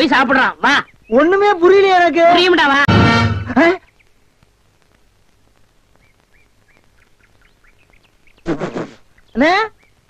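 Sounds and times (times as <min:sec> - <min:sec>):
small birds chirping: 0:00.0 - 0:02.8, 0:03.5 - 0:10.0.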